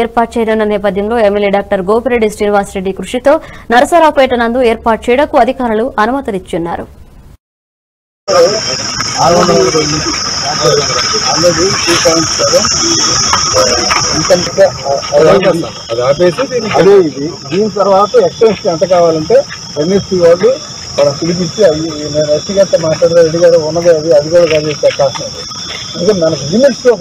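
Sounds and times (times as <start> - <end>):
crickets or cicadas droning: 0.0 - 6.8, 8.3 - 27.0
men talking: 8.3 - 27.0.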